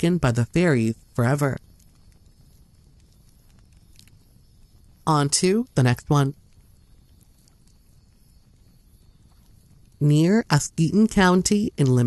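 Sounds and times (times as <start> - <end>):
faint low hum and hiss: 0.0 - 12.0.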